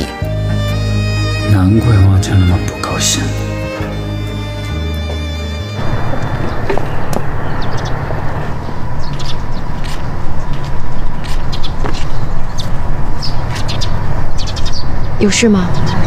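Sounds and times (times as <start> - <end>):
birds chirping: 0.0 - 16.0
steady low rumble: 5.8 - 11.6.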